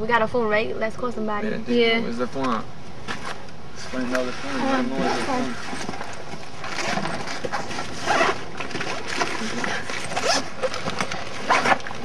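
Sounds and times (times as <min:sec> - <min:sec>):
zipper pulls: 0:04.4 - 0:12.0
fabric bag rustling: 0:04.5 - 0:11.8.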